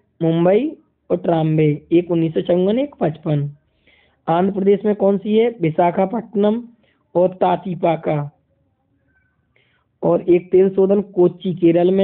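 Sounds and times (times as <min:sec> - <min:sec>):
man speaking: 0:00.2 - 0:03.6, 0:04.3 - 0:08.3, 0:10.0 - 0:12.0.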